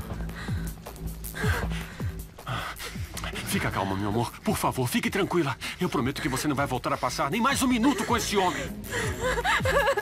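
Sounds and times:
gasping breaths: 0.0s - 4.4s
dramatic background music: 0.0s - 10.0s.

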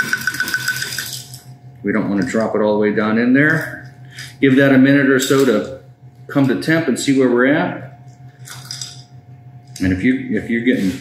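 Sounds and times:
steady hum: 0.0s - 11.0s
man speaking: 9.8s - 11.0s.

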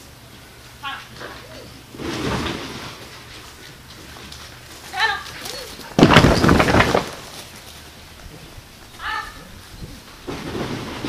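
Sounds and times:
dog whining: 1.2s - 1.9s, 5.0s - 6.0s.

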